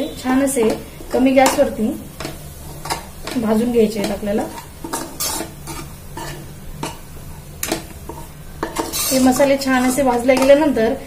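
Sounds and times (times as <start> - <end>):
faint sizzle: 0.0 - 11.0
spoon scraping a pan: 0.5 - 10.8.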